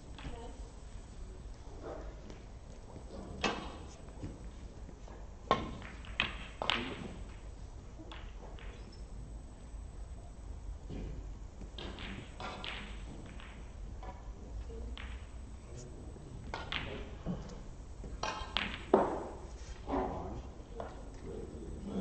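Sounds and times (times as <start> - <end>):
snooker balls clicking: 5.5 - 9.7, 11.6 - 19.6.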